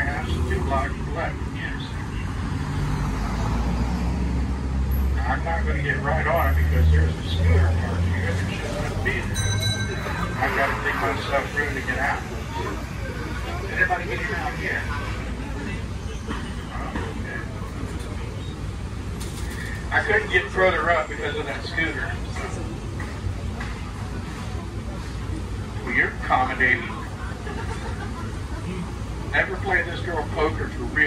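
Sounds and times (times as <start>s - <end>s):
bus engine rumble: 0.0s - 31.0s
traffic noise: 0.0s - 31.0s.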